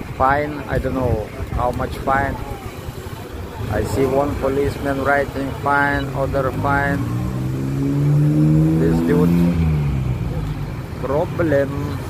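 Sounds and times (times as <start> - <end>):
vehicle engine accelerating: 3.6 - 12.0.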